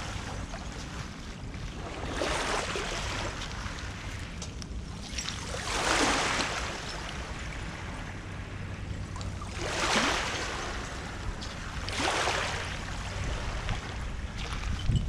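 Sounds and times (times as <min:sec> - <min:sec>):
small waves washing ashore: 0:00.0 - 0:15.0.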